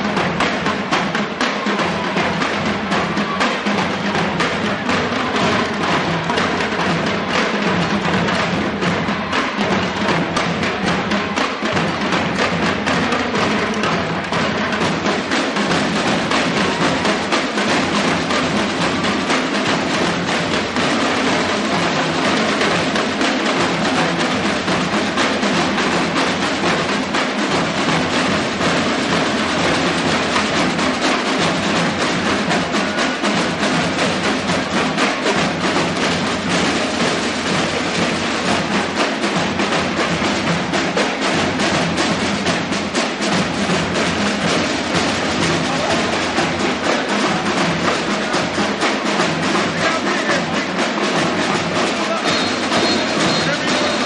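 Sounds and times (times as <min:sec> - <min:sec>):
marching drumline drumming: 0:00.0 - 0:54.0.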